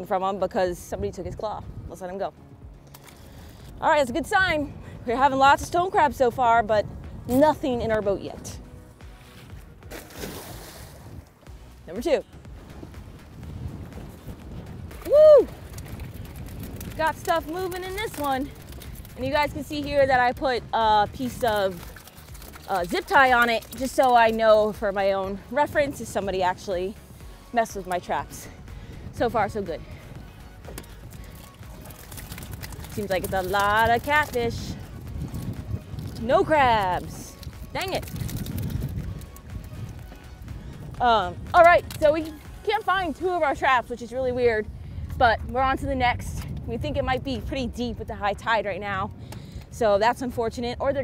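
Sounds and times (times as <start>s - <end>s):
wind rumbling on microphone: 0.0s - 51.0s
trap splashing into water: 9.9s - 11.3s.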